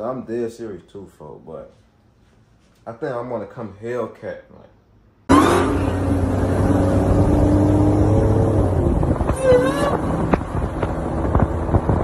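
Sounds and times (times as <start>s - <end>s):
car engine running: 5.3s - 12.0s.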